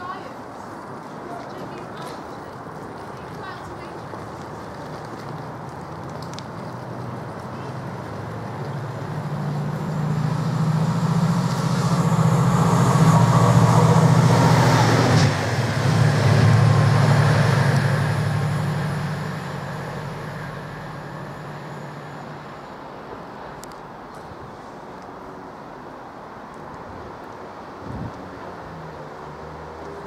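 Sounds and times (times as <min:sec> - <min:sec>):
diesel locomotive passing: 0:00.0 - 0:30.0.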